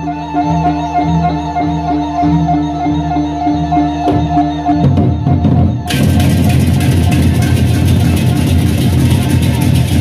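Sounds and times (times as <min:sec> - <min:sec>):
barrel drums: 0:04.1 - 0:10.0
hand cymbals clashing: 0:05.9 - 0:10.0.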